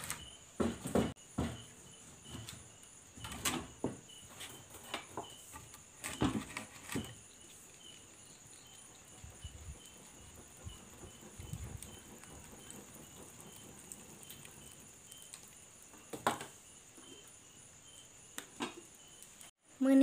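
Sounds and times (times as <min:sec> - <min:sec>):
wood fire crackling: 0:00.0 - 0:19.6
insects chirping: 0:00.0 - 0:20.0.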